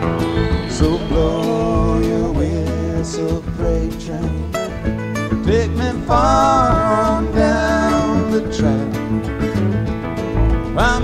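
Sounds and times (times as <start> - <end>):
bass: 0.0 - 11.0
picked acoustic guitar lead: 0.0 - 11.0
strummed acoustic guitar: 0.0 - 11.0.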